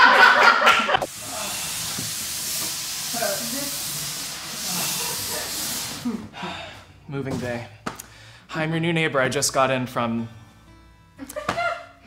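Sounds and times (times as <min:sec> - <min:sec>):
steady hiss: 0:01.0 - 0:06.3.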